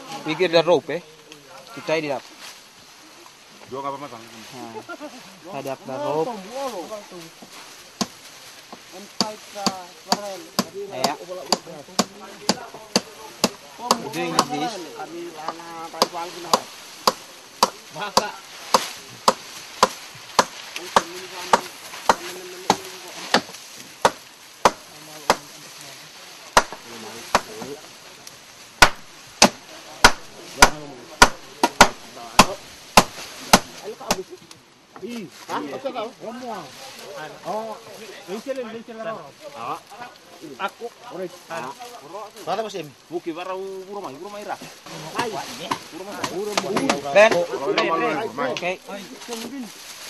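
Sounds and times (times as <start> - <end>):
hand tool striking wood: 7.4 - 14.7, 15.4 - 25.5, 26.5 - 27.8, 28.8 - 34.3, 45.2 - 47.9.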